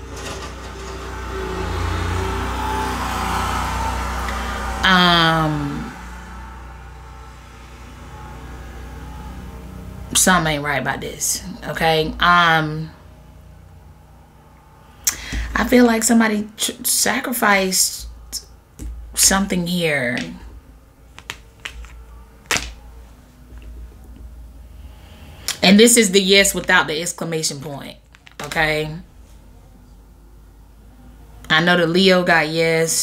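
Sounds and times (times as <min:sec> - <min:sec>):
low-pitched background hum: 0:02.2 - 0:32.9
card slapped on table: 0:21.2 - 0:22.8
cards clicking on table: 0:21.2 - 0:22.8.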